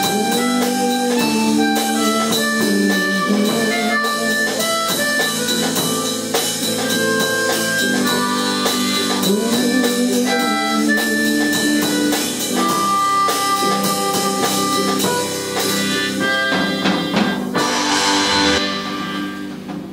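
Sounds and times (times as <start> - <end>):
blues band playing: 0.0 - 19.9
drum kit played with sticks: 0.0 - 19.9
electric guitar: 0.0 - 19.9
harmonica: 0.0 - 19.9
cymbal wash: 17.6 - 19.6.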